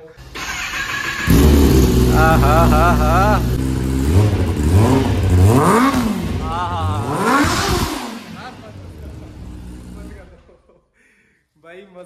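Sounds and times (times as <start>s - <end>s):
motorcycle engine revving: 0.2s - 10.5s.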